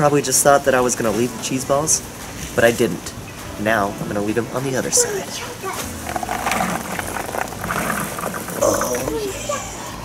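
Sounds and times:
cheese balls pouring from plastic jar: 6.0 - 9.2.

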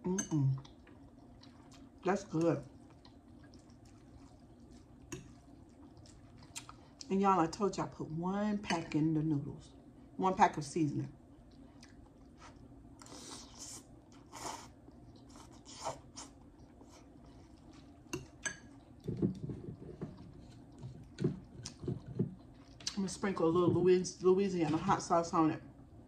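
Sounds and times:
chewing and mouth sounds: 0.4 - 7.1, 11.3 - 23.0.

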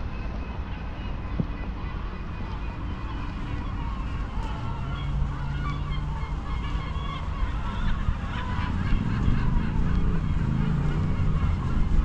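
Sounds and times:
birds calling: 0.0 - 12.0
steady low rumble: 0.0 - 12.0.

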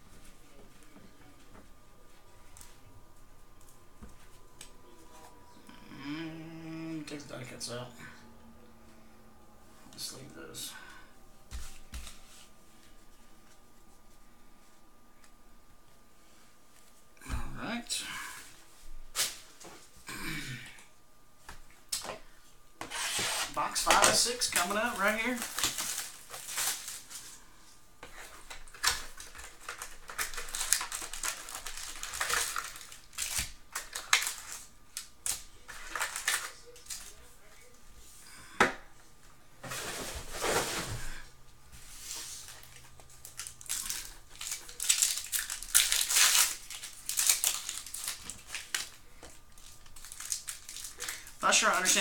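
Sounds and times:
foil packs crinkling: 22.9 - 37.6, 42.0 - 52.0.

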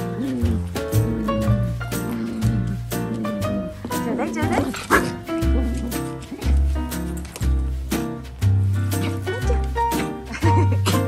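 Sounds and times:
background music: 0.0 - 11.0
small dog yipping: 4.6 - 6.4.

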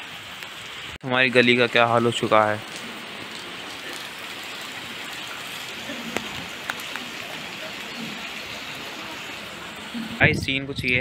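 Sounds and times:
rain on pavement: 0.0 - 10.4.

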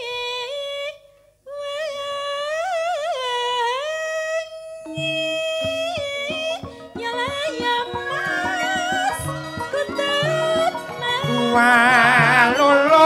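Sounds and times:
woman singing with vibrato: 0.0 - 13.0
gamelan struck notes: 4.8 - 13.0.

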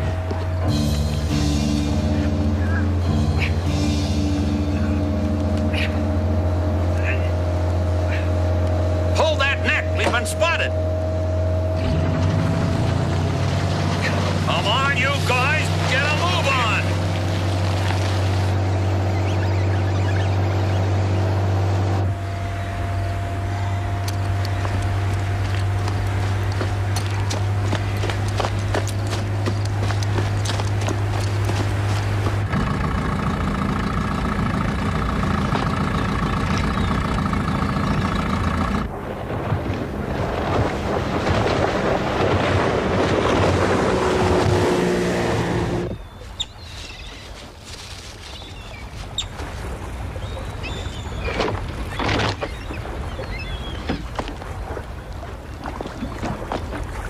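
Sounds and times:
motorboat engines droning: 0.0 - 57.0.

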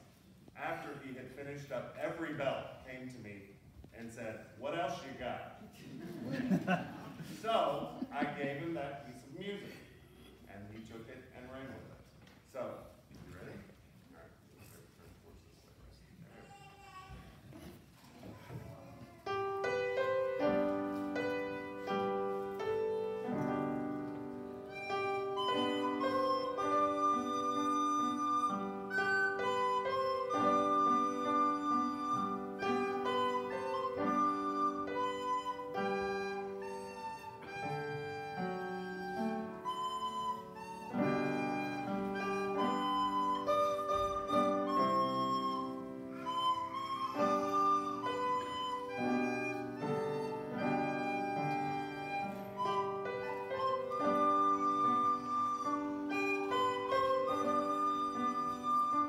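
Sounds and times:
upright piano: 19.2 - 59.0
recorder melody: 19.4 - 59.0.

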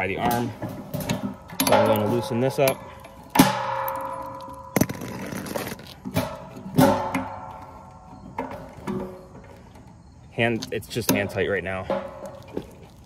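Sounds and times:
wrench clanking on metal: 0.2 - 4.9.

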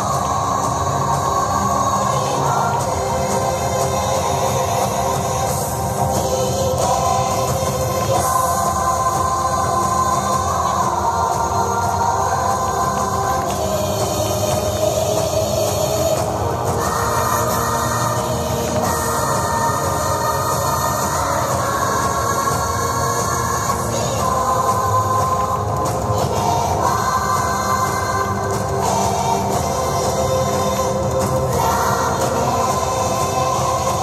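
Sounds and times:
music with sustained chords: 0.0 - 34.0.

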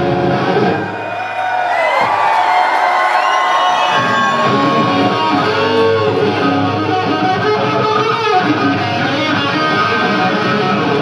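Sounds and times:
electric guitar solo: 0.0 - 1.1, 3.3 - 11.0
crowd cheering: 0.0 - 11.0.

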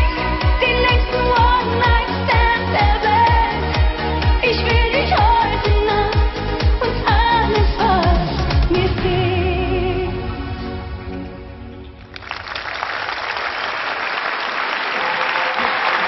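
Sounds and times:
woman singing pop song: 0.0 - 10.8.

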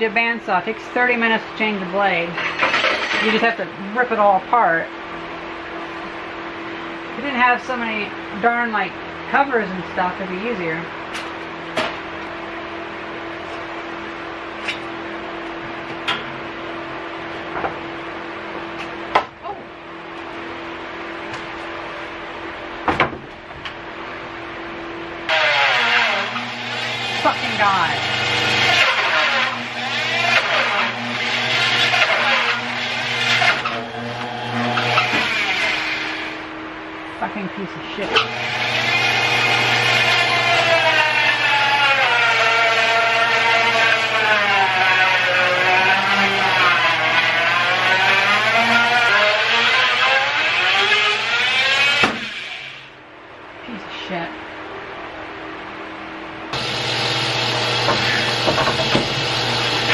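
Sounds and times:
bandsaw motor humming: 0.0 - 16.8, 25.2 - 53.0, 56.5 - 59.9
saw blade ripping through log: 2.4 - 3.4, 25.3 - 26.4, 28.6 - 33.8.

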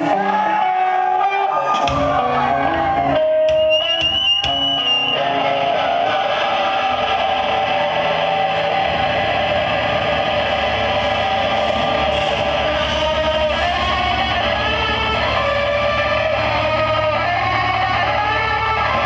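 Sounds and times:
distorted electric guitar: 0.0 - 19.0
high held guitar tone: 0.0 - 19.0
bass and drums: 1.7 - 19.0.

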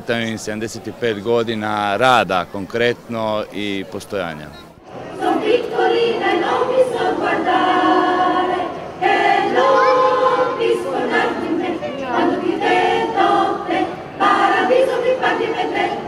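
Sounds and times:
female choir singing: 5.0 - 16.0.

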